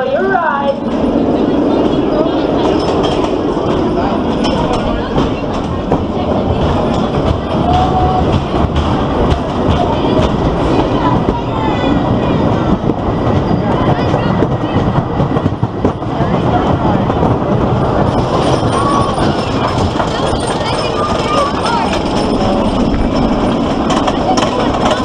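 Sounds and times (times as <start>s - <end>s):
roller coaster wheels rumbling: 0.0s - 25.0s.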